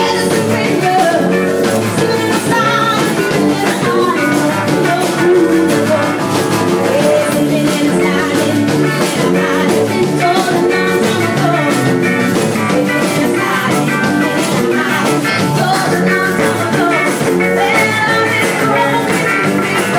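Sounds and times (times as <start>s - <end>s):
drum kit: 0.0s - 19.9s
electric guitar: 0.0s - 19.9s
woman singing lead: 0.0s - 19.9s.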